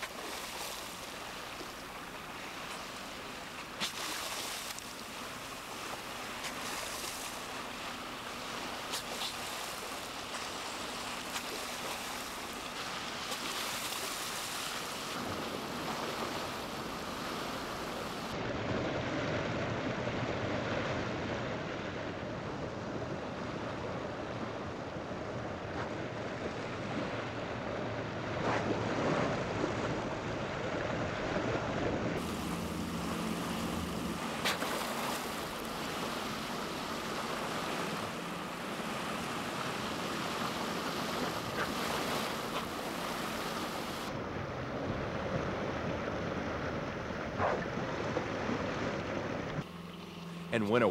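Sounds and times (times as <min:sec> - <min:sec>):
sharp splashes: 0:00.0 - 0:18.4, 0:32.2 - 0:44.1
water rushing along a boat: 0:00.0 - 0:50.9.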